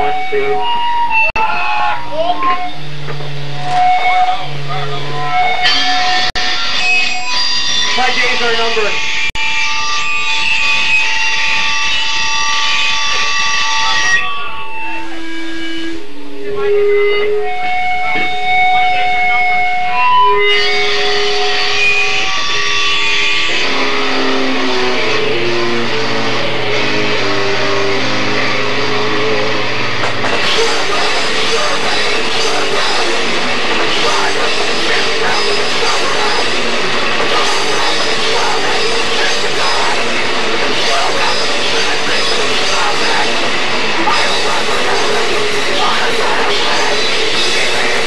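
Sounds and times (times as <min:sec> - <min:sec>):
electric guitar held notes: 0:00.0 - 0:09.1, 0:10.7 - 0:48.0
picked guitar riff: 0:00.0 - 0:09.1, 0:11.8 - 0:48.0
drum kit: 0:22.6 - 0:48.0.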